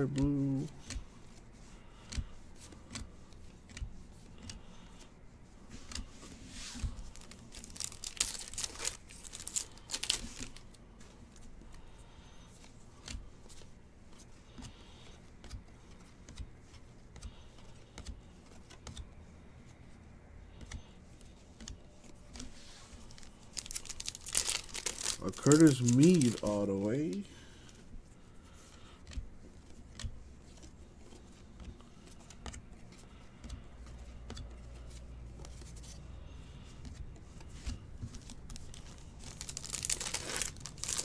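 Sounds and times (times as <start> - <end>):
trading cards rustling: 0.0 - 19.0, 21.5 - 41.0
foil wrapper crinkling: 6.9 - 10.7, 23.1 - 27.2, 38.0 - 41.0.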